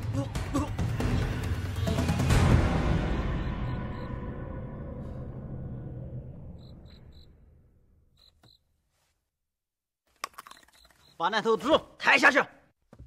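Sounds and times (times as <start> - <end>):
dark low soundtrack music: 0.0 - 7.8
crickets chirping: 3.1 - 4.3, 6.4 - 7.5, 8.2 - 8.6.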